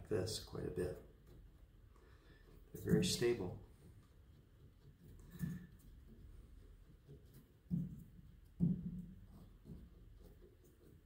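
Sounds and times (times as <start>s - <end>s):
soft wooden thumps of piano hammers: 7.6s - 10.0s.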